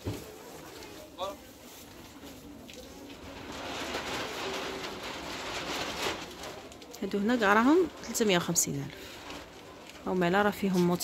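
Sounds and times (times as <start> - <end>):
shop noise: 0.0 - 11.0.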